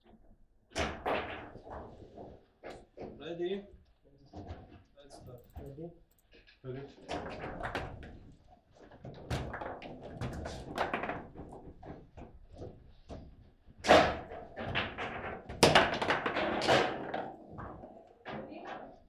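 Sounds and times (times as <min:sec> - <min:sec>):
foosball knocks and thuds: 0:13.9 - 0:18.4.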